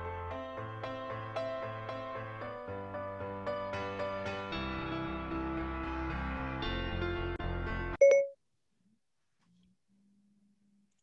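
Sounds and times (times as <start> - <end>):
background music: 0.0 - 8.0
short electronic beep: 8.0 - 8.4.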